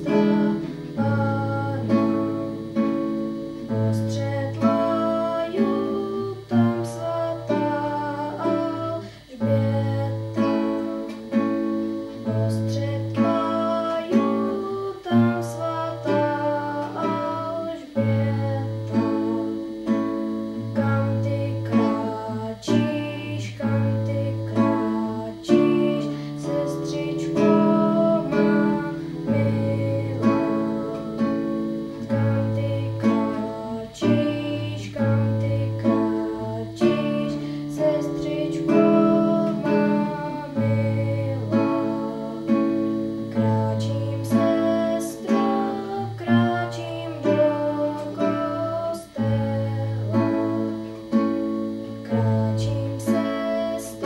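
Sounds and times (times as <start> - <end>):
classical guitar playing chords: 0.0 - 54.0.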